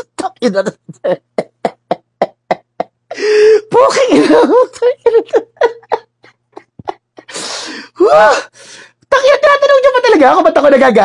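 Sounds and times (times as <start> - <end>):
man laughing: 0.8 - 7.3.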